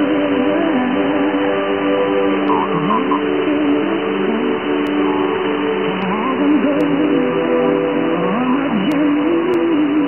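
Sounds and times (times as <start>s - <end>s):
muffled song on radio: 0.0s - 10.0s
radio static hiss: 2.2s - 10.0s.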